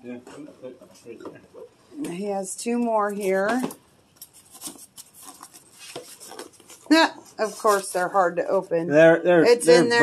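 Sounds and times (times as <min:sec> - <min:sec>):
cardboard rustling and scraping: 0:03.3 - 0:08.2.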